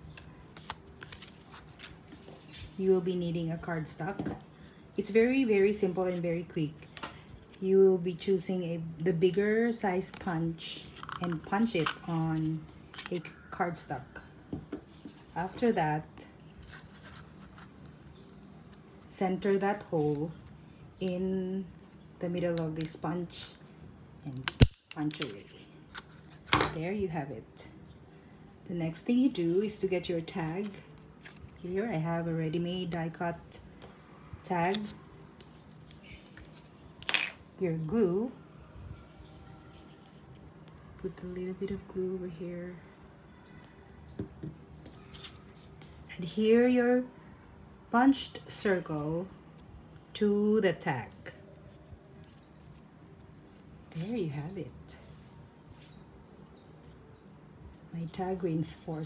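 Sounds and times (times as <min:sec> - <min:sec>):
paper rustling: 0:00.2 - 0:02.8, 0:16.6 - 0:18.8
objects set down on table: 0:37.0 - 0:37.4.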